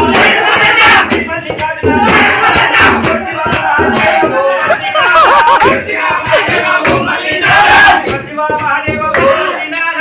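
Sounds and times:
men shouting and chanting: 0.0 - 10.0.

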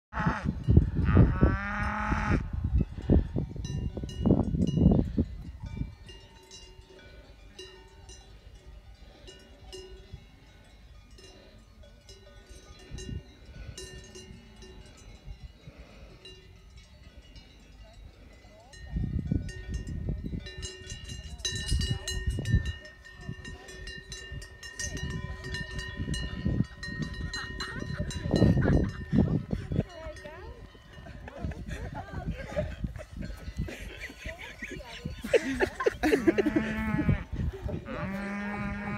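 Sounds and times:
cowbells clanking: 1.6 - 38.9
man laughing: 27.3 - 29.8, 31.1 - 37.8
cattle mooing: 36.1 - 38.9.

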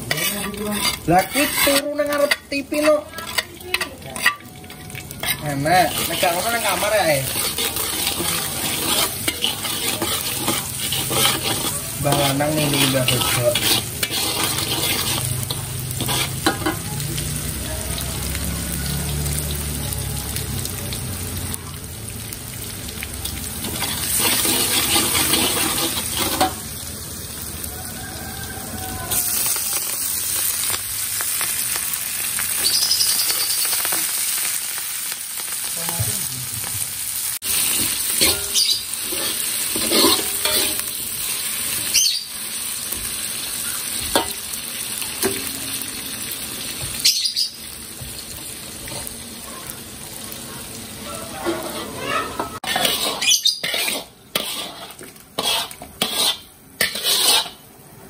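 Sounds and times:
metal spatula scraping a wok: 0.0 - 17.0, 23.3 - 26.8, 37.4 - 42.2, 51.3 - 57.7
garlic sizzling in hot oil: 0.0 - 58.0.

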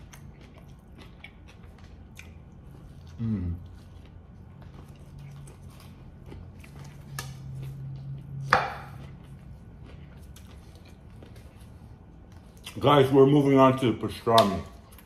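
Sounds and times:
chewing sandwich: 0.0 - 13.7
person humming: 3.2 - 3.7.

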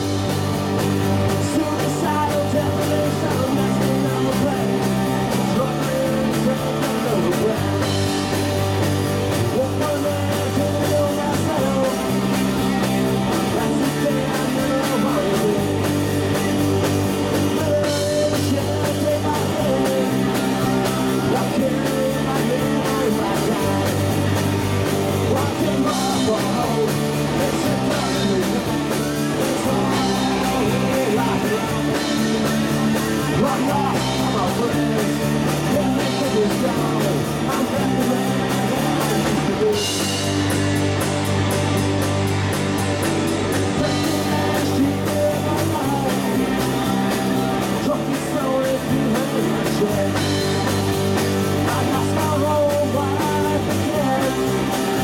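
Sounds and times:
man singing: 0.0 - 40.7, 43.5 - 55.0
bass guitar notes: 0.0 - 55.0
rock band playing: 0.0 - 55.0.

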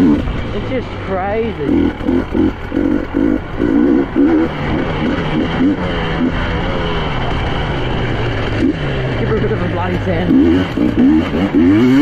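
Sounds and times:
two-stroke engine under load: 0.0 - 12.0.

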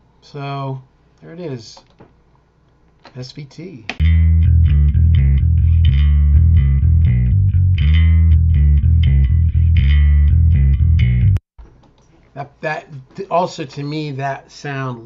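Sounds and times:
electric bass riff: 4.0 - 11.4.

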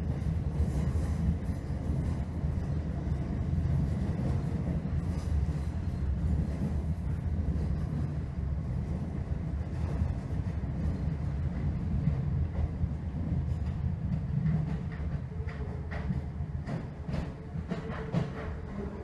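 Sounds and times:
train rumbling inside carriage: 0.0 - 19.0.

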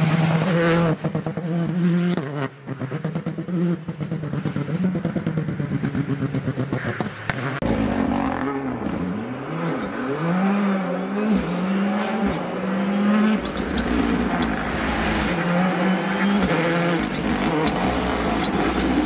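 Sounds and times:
rally car engine accelerating: 0.0 - 19.0
rally car engine pulling away: 0.0 - 19.0.

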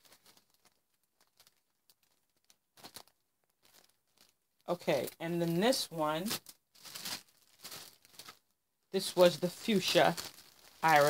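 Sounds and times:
faint rustles of fiber handled: 0.0 - 11.0.

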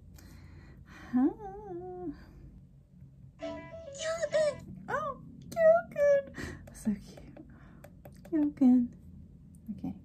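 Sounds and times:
high-pitched cartoon voice calling: 3.4 - 4.6.

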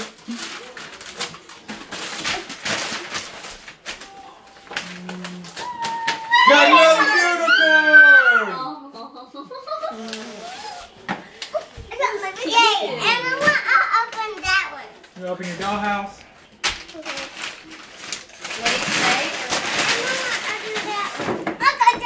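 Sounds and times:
tissue paper and gift bag rustling: 0.0 - 8.4, 9.6 - 14.3, 15.1 - 22.0
child's high voice: 5.6 - 8.8, 19.9 - 22.0.

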